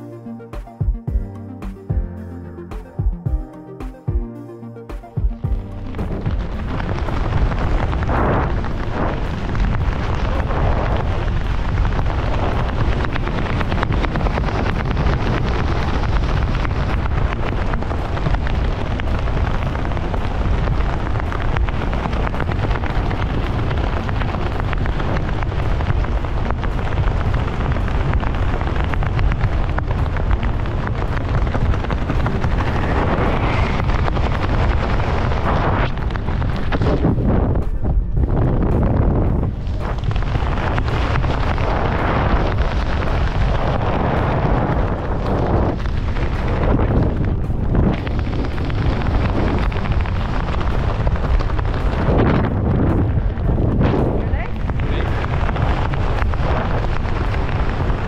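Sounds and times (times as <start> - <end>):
wind buffeting microphone: 5.2 - 58.0.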